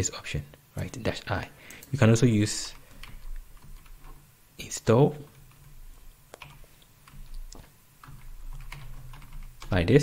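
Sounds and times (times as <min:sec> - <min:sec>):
keyboard keystrokes: 0:05.4 - 0:09.8.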